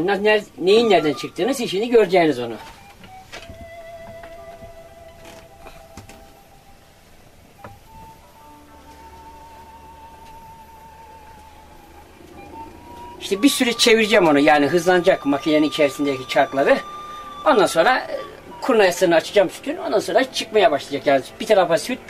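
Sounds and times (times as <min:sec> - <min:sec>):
hand-cranked separator whine: 0:00.6 - 0:22.0.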